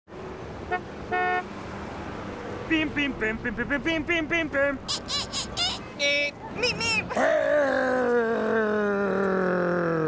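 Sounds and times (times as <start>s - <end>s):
street background noise: 0.1s - 10.0s
car horn honking: 0.6s - 1.5s.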